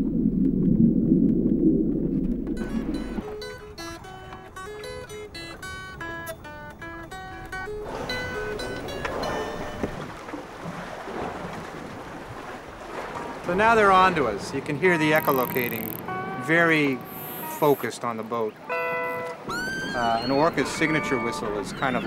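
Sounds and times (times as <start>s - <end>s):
low rumble: 0.0s - 3.3s
guitar picking single-note melody: 2.6s - 7.8s, 18.5s - 19.4s.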